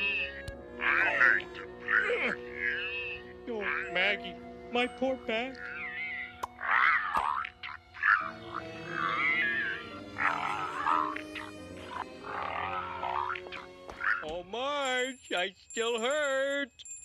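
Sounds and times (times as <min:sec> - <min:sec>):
cartoon voice wavering groans: 0:00.0 - 0:04.3, 0:05.5 - 0:14.2
soft background music: 0:00.0 - 0:15.4.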